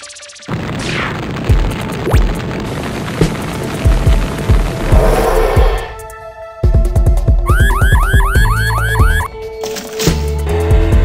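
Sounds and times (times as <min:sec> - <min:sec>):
cartoon siren yelping: 0:07.5 - 0:09.3.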